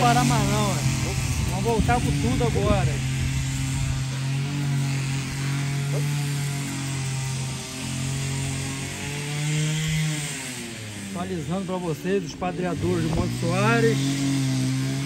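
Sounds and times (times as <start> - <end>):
motor running steadily: 0.0 - 15.0.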